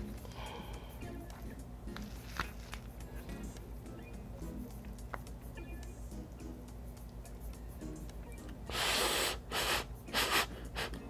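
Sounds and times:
person blowing on food: 8.6s - 11.0s.

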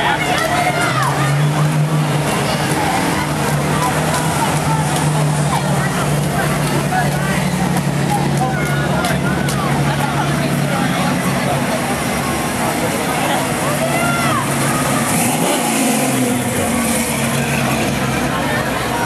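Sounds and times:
car engines rumbling: 0.0s - 19.0s
onlookers chatting: 0.0s - 19.0s.

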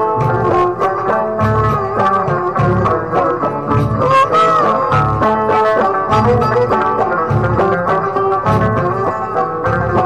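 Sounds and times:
bending melodic line: 0.0s - 10.0s
low drum beats: 0.0s - 10.0s.

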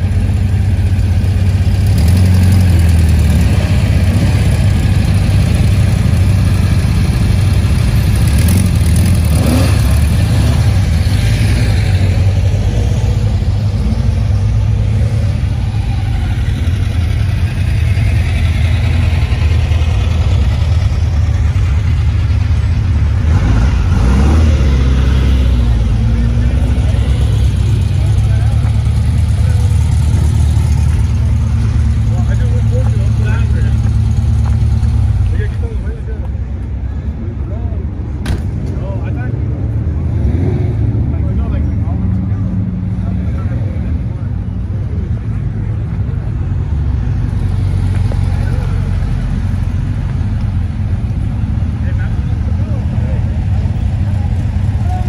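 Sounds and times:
car engines rumbling past: 0.0s - 55.0s.

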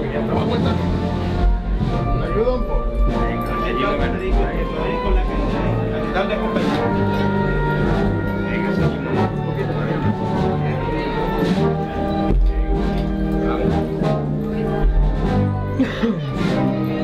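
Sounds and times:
wind band playing a march: 0.0s - 17.0s
drum strikes: 0.3s - 7.0s, 11.3s - 16.8s.

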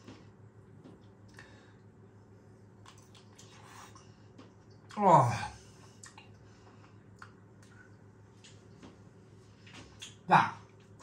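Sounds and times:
low steady hum: 0.0s - 11.0s
faint wet chewing: 2.8s - 5.0s, 5.8s - 11.0s.

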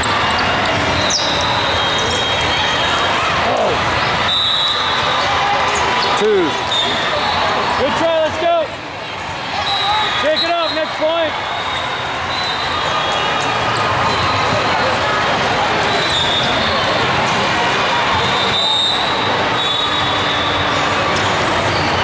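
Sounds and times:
din of sports hall: 0.0s - 22.0s.

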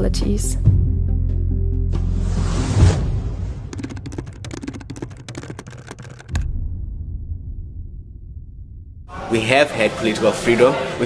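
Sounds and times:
keyboard key clicks: 3.8s - 6.4s
deep low thud: 6.3s - 9.1s
low rumble: 6.3s - 9.3s.

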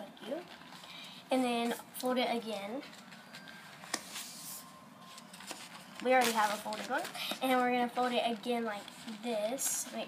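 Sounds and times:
paper filter rustling: 0.0s - 10.0s.

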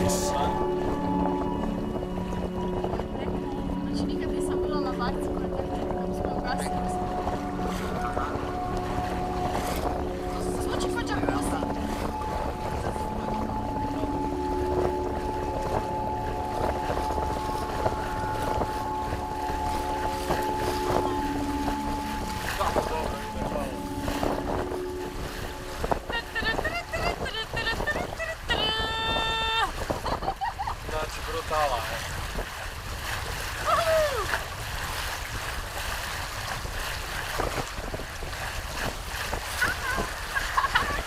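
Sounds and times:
water rushing past boat hull: 0.0s - 41.0s
wind on microphone: 0.0s - 41.0s.

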